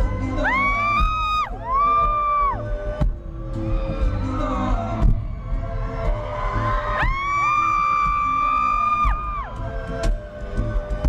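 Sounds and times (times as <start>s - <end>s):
audience screaming: 0.0s - 2.7s, 3.5s - 9.9s
crowd noise: 0.0s - 11.0s.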